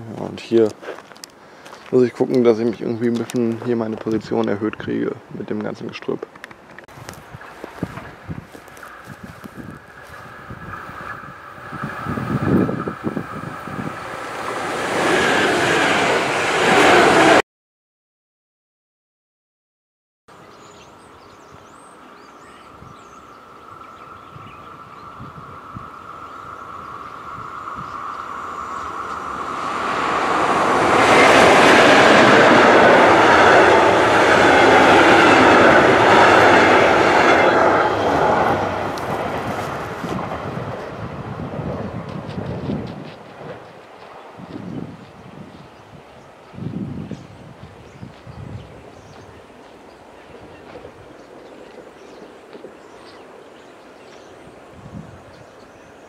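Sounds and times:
electric train passing: 0:07.1 - 0:17.4, 0:20.4 - 0:56.0.

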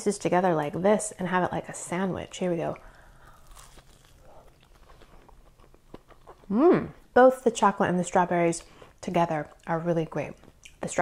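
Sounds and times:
chewing with crackles: 0:02.8 - 0:06.5
toast crunching: 0:03.0 - 0:06.5.

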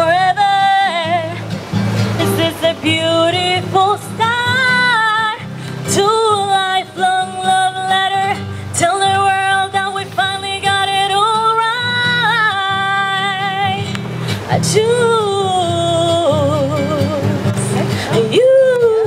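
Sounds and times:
acoustic guitar: 0:00.0 - 0:19.0
woman singing into microphone: 0:00.0 - 0:19.0.

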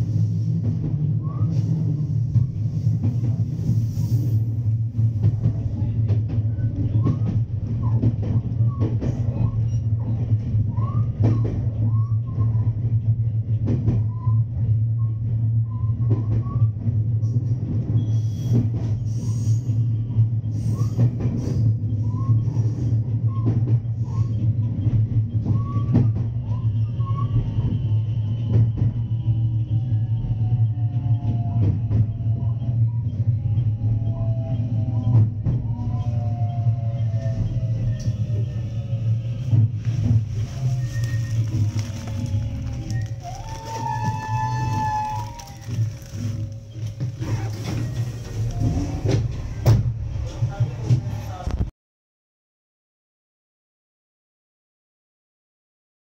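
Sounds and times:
electric train hum: 0:00.0 - 0:51.4
wheel squeals: 0:32.4 - 0:49.7
rail-joint clicks: 0:39.4 - 0:51.5.

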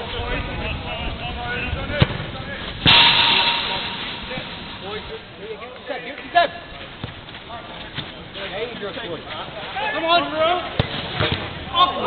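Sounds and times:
loud crash: 0:02.8 - 0:05.5
ball being kicked: 0:06.8 - 0:07.3.

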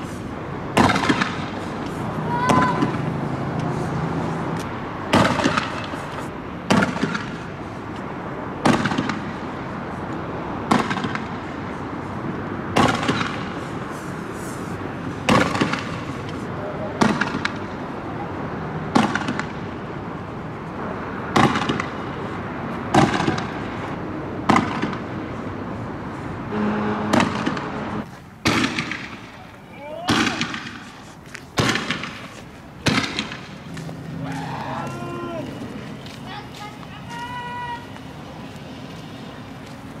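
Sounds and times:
fireworks banging: 0:00.0 - 0:03.6, 0:05.0 - 0:07.6, 0:08.6 - 0:09.6, 0:12.7 - 0:14.2, 0:15.2 - 0:17.9, 0:21.3 - 0:25.3, 0:26.5 - 0:34.1.

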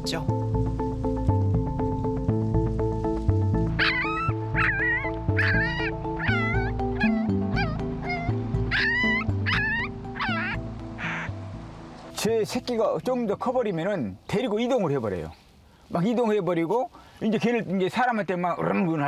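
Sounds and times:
background music: 0:00.0 - 0:15.2
puppies whimpering: 0:03.8 - 0:11.3.

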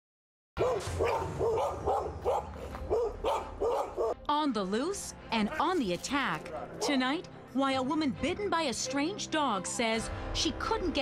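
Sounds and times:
dog barking: 0:00.6 - 0:04.2.

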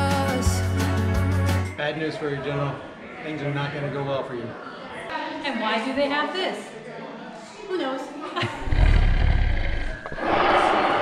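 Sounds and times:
dinosaur roar through loudspeakers: 0:08.5 - 0:11.0.

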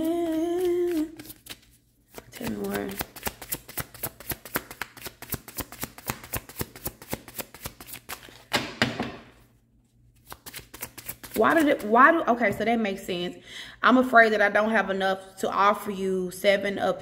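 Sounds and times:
cards shuffling: 0:00.0 - 0:08.8, 0:10.2 - 0:11.9
card rustle: 0:00.5 - 0:08.5.

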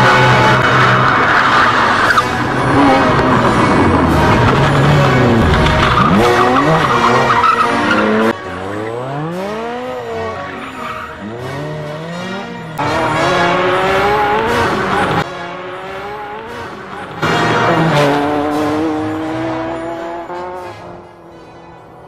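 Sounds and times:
race car engines revving: 0:00.0 - 0:22.0.

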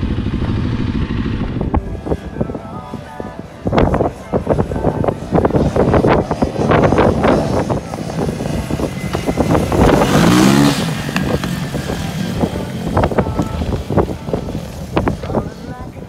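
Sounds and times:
quad bike engine passing: 0:00.0 - 0:16.0.

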